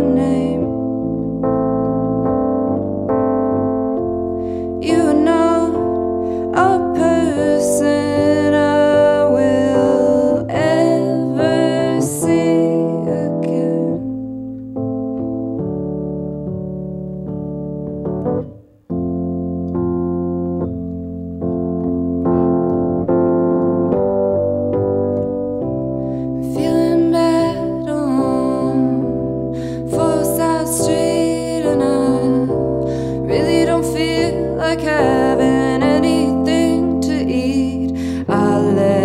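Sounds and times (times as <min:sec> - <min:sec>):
woman singing: 0:00.0 - 0:01.0, 0:04.5 - 0:14.3, 0:26.4 - 0:39.0
electric piano chords: 0:00.0 - 0:39.0.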